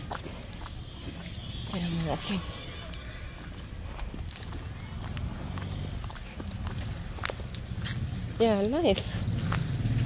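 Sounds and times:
footsteps clicking: 0.0s - 10.0s.

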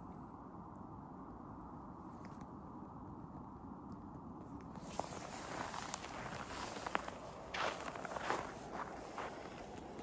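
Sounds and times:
footsteps crunching on snow: 4.8s - 10.0s.

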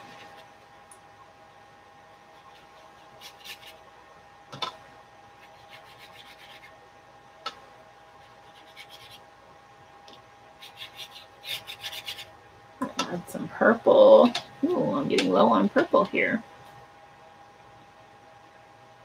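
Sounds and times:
brush scrubbing paint on paper: 2.3s - 3.9s, 5.3s - 6.8s, 8.1s - 9.3s, 10.6s - 12.3s.

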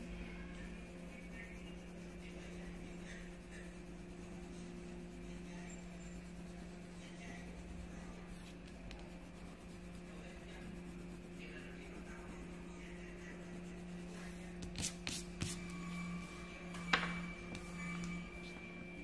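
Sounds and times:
pencil scratching on paper: 0.0s - 16.2s
steady low hum: 0.0s - 19.0s.

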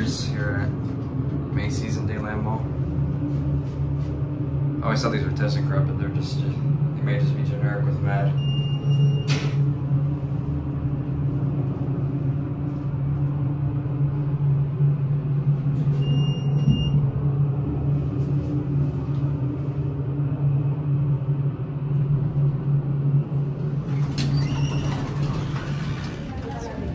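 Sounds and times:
elevator hum and rumble: 0.0s - 26.9s.

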